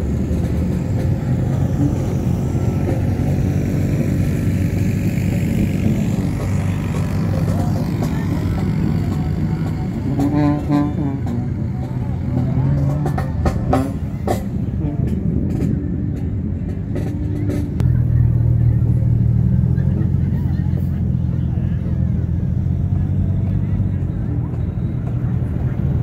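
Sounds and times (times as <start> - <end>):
vehicle engine humming: 0.0 - 26.0.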